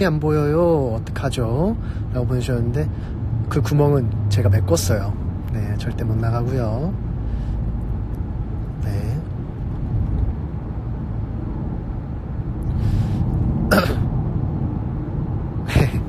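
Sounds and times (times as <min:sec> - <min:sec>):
car cabin rumble: 0:04.7 - 0:16.0
person coughing: 0:13.7 - 0:14.1.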